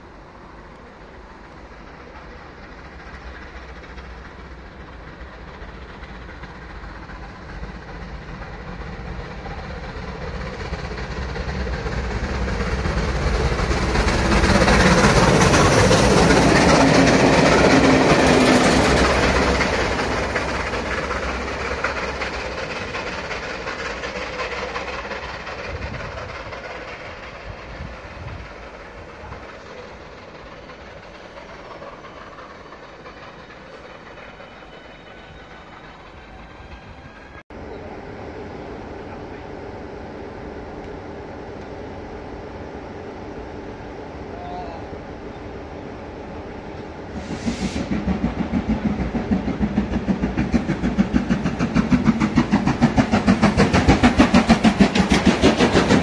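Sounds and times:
diesel locomotive passing: 0.0s - 56.0s
steam train passing: 0.0s - 56.0s.

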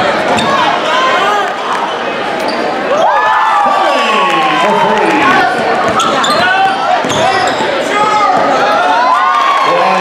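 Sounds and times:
sneakers squeaking: 1.9s - 2.8s, 5.4s - 8.8s
basketball bouncing: 5.5s - 8.6s.

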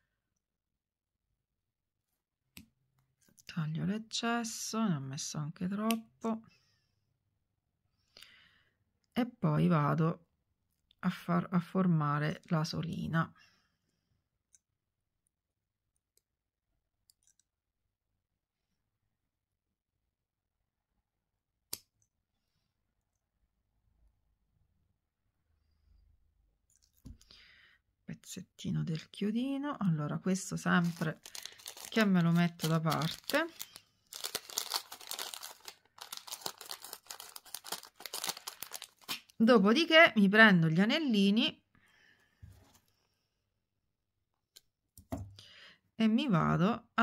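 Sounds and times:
handling small jewellery parts: 30.8s - 39.1s.

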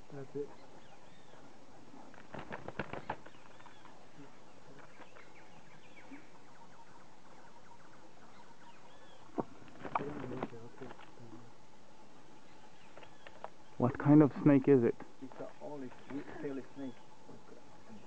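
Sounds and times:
faint bird chirps: 0.0s - 14.3s, 15.3s - 18.0s
woodpecker knocking and flapping: 0.5s - 6.4s, 9.2s - 11.5s, 12.5s - 14.1s.

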